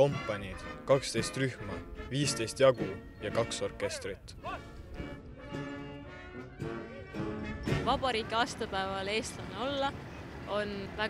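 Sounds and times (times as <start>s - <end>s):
wind band playing sustained chords: 0.0s - 10.3s.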